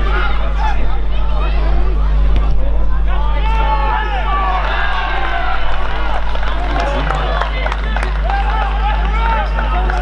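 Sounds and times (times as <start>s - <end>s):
steady low hum: 0.0s - 10.0s
people shouting: 3.1s - 10.0s.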